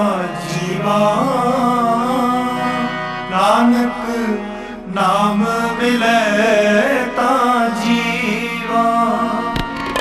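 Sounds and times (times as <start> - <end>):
man singing a devotional hymn: 0.0 - 9.6
instrumental accompaniment: 0.0 - 10.0.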